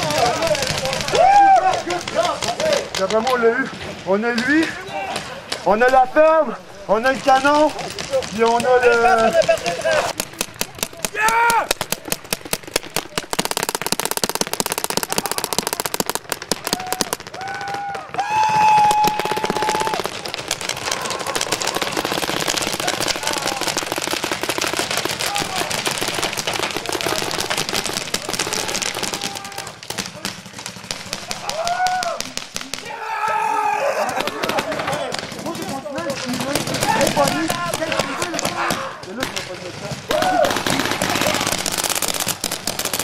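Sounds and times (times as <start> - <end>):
people shouting: 0.0 - 3.5, 11.0 - 11.9, 14.9 - 16.0, 16.6 - 35.7, 36.5 - 39.2, 40.0 - 41.7
paintball markers firing: 0.0 - 3.7, 7.0 - 43.0.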